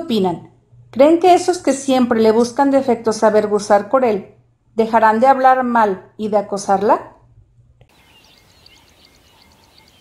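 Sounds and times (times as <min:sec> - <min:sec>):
small birds chirping: 0:07.9 - 0:10.0.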